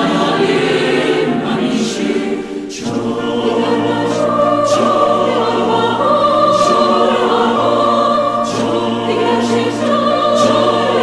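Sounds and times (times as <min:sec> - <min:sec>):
mixed choir singing: 0:00.0 - 0:11.0
singers' hissing consonant: 0:00.0 - 0:11.0.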